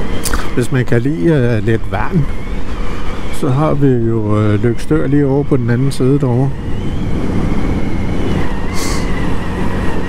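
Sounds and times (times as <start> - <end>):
high whine: 0.0 - 10.0
motorcycle engine cruising: 0.0 - 10.0
road and wind noise: 0.0 - 10.0.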